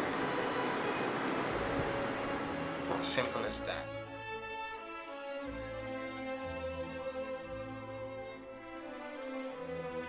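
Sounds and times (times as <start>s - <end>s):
room noise hiss: 0.0s - 3.7s
faint musical tones: 0.0s - 10.0s.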